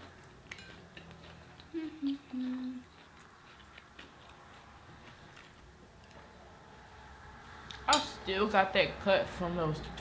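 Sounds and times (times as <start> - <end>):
person humming: 1.7 - 2.9.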